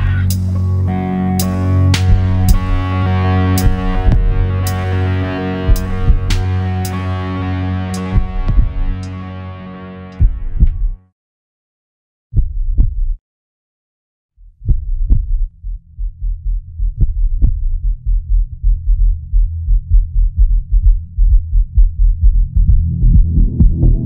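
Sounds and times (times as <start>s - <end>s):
low hum: 0.0s - 11.0s, 15.2s - 24.0s
heartbeat thumps: 2.0s - 2.9s, 3.6s - 4.7s, 5.6s - 6.6s, 8.1s - 9.1s, 10.2s - 11.0s, 12.4s - 13.2s, 14.5s - 24.0s.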